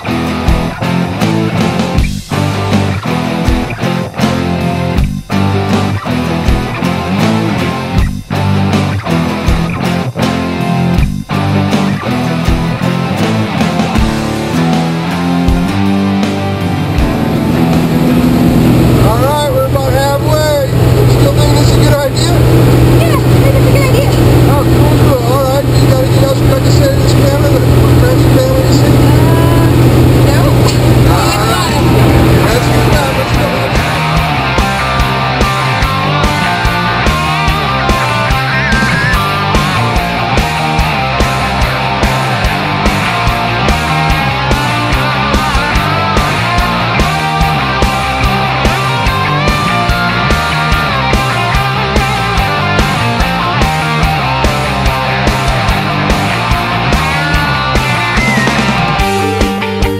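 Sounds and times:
rock music with guitar and drums: 0.0s - 59.9s
airplane engine drone in cabin: 16.8s - 33.8s
people shouting: 56.3s - 59.1s.

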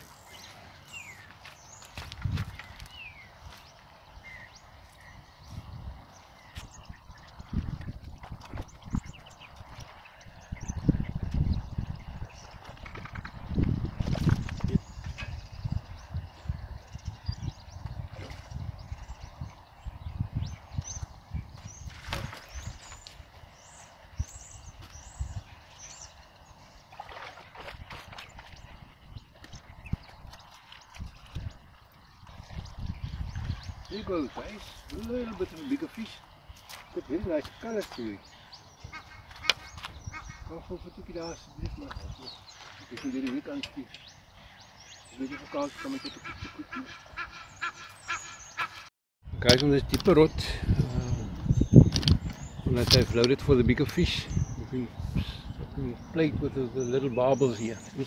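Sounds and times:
wading through shallow water: 0.0s - 10.7s, 21.4s - 48.2s.

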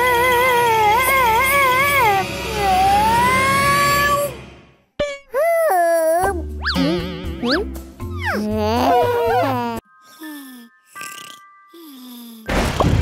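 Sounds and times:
playful children's music: 5.0s - 12.4s.

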